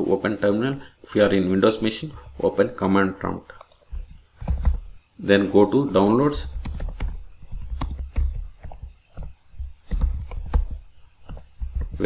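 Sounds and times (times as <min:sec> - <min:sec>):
typing on computer keyboard: 0:06.4 - 0:12.0.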